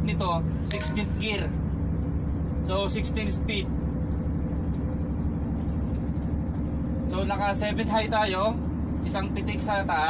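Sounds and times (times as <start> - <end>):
truck diesel engine drone: 0.0 - 10.0.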